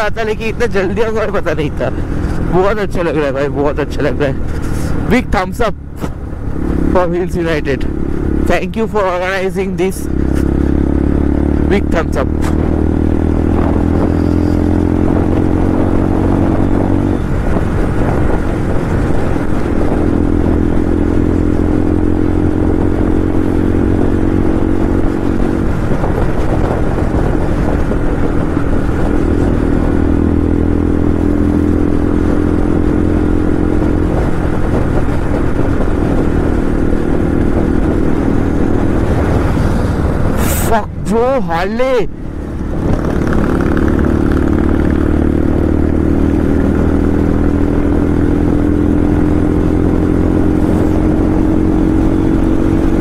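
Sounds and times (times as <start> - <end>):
motorcycle engine cruising: 0.0 - 53.0
wind and road rush: 0.0 - 53.0.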